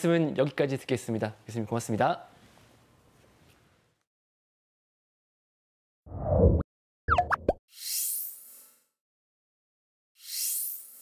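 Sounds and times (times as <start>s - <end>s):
pops rising in pitch: 6.1s - 7.6s.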